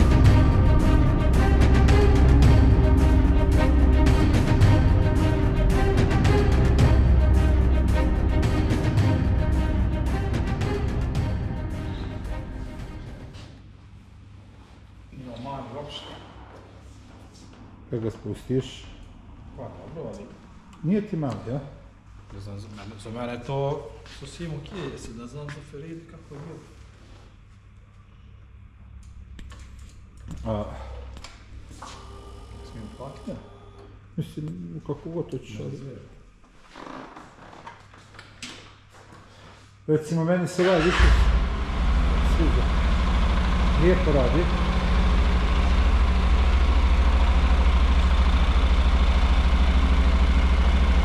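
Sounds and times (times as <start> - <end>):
steady low hum: 0.0 - 36.7, 39.0 - 51.0
motorcycle engine idling: 40.9 - 51.0.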